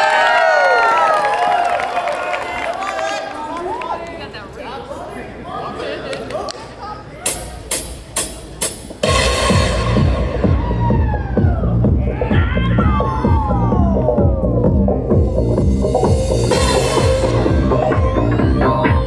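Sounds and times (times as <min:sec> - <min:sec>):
electronic dance music over pa: 0:07.3 - 0:19.0.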